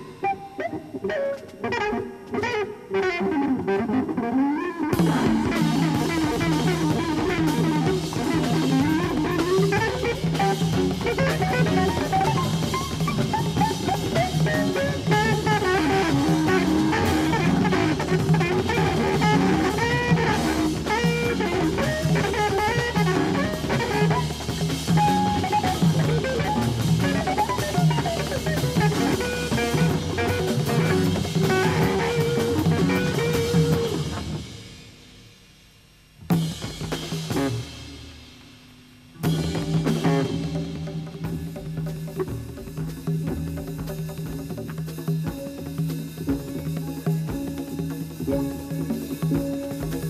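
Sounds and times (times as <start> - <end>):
jazz-funk band playing: 0.0 - 35.0, 36.2 - 50.0.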